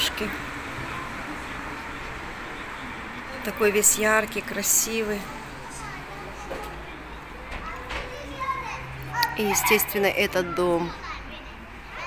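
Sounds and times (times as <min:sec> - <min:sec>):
distant children playing: 0:00.0 - 0:12.0.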